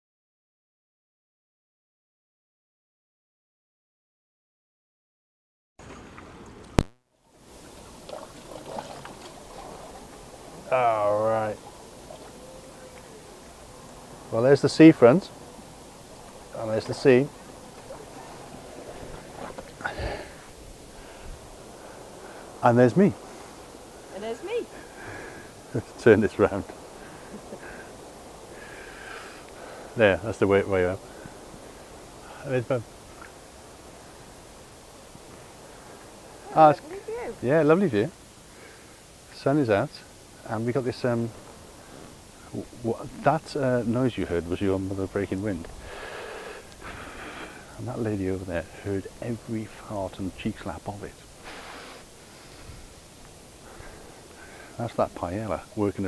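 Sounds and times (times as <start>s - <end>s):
water lapping gently: 5.8s - 39.3s, 40.3s - 56.0s
faint outdoor background noise: 5.8s - 56.0s
small rustles: 7.4s - 37.4s.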